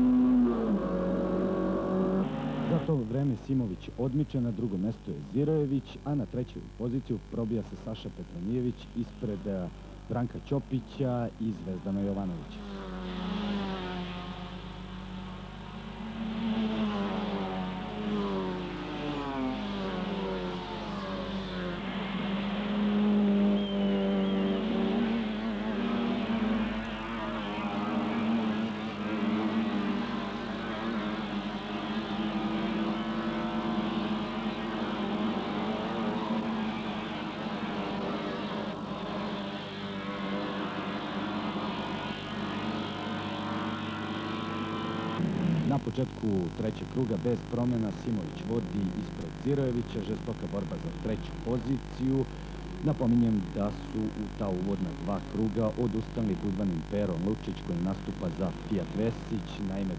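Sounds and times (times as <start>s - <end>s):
racing car engines revving: 0.0s - 7.6s, 10.2s - 59.9s.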